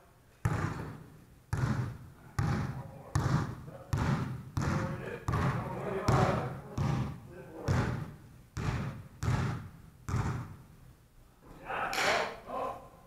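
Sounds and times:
basketball bouncing on wooden floor: 0.4 - 10.6.

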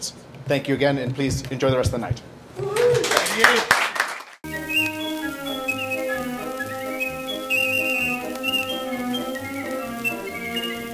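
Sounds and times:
instrumental background music: 4.4 - 10.9.

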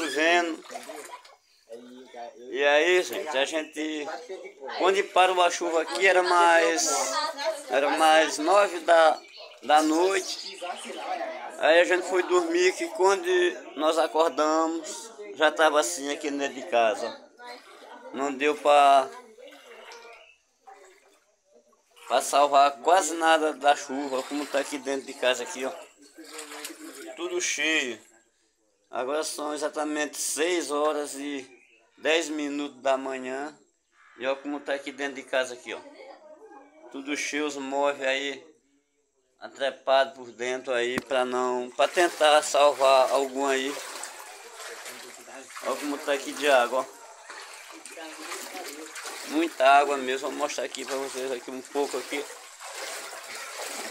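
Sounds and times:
water sloshing: 0.0 - 2.1, 3.0 - 13.3, 17.0 - 27.6, 41.0 - 53.9
faint voices: 0.0 - 21.2, 21.9 - 27.6, 41.0 - 53.9.

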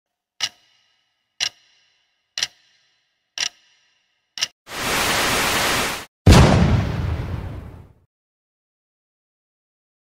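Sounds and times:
sharp ringing ticks: 0.1 - 4.6.

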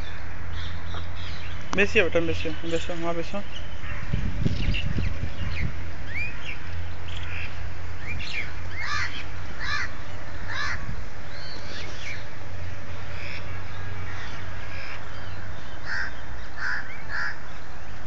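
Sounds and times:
crows cawing: 8.7 - 10.9, 15.8 - 17.4.

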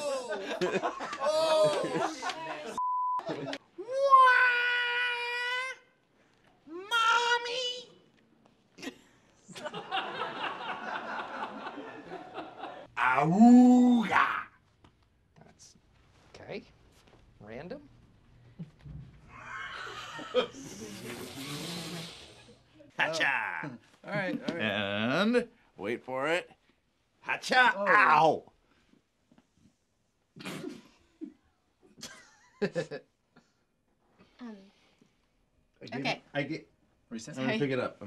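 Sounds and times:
people laughing: 0.0 - 3.6, 9.4 - 12.9, 19.4 - 21.2
man yelling: 3.8 - 5.9, 6.7 - 7.9, 13.0 - 14.6, 23.0 - 23.8, 27.4 - 28.4.

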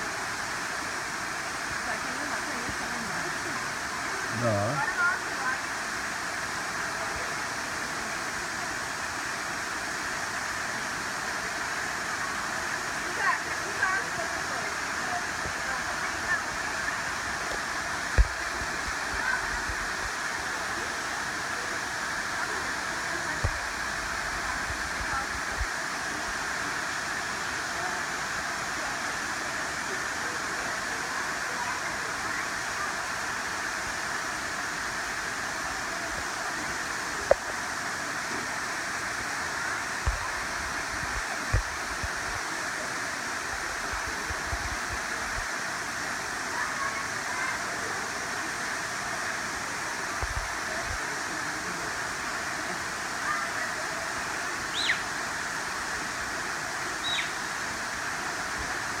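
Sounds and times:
waterfall rushing onto rocks: 0.0 - 59.0.

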